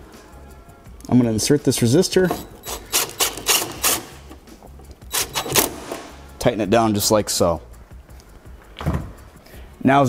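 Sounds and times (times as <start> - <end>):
cordless drill driving screw: 2.3 - 4.4, 5.1 - 6.0.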